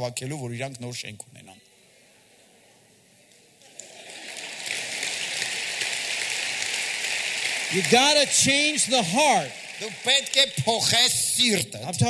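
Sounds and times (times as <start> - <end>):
large audience applauding: 3.6 - 11.7.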